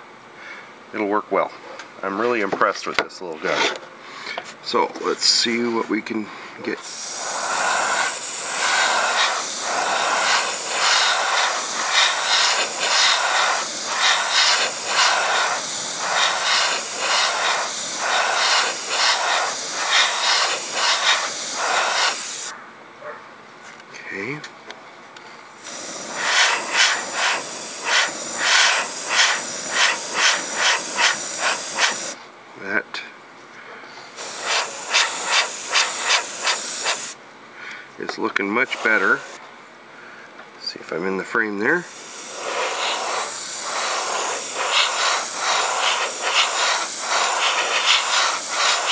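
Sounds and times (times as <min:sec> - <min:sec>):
airbrush hissing: 0:06.8 - 0:22.5, 0:25.6 - 0:32.2, 0:34.2 - 0:37.2, 0:38.6 - 0:39.4, 0:41.7 - 0:48.9.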